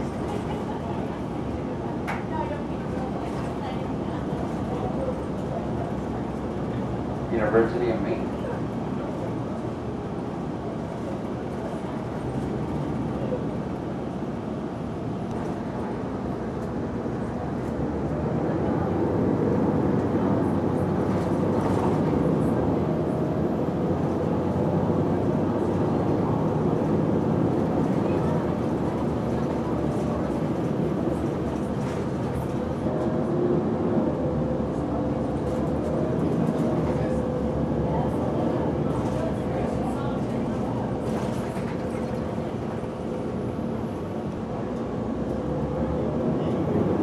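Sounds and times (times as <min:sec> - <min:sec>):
bus engine and road noise: 0:00.0 - 0:47.0.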